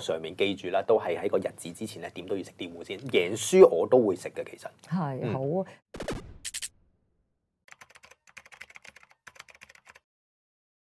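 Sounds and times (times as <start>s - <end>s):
rapid keyboard key clicks: 7.7s - 10.0s.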